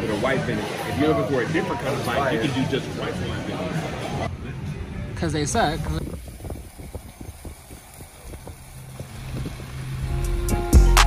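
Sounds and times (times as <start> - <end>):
road rumble inside car: 6.2 - 10.7
music with deep bass: 9.1 - 11.0.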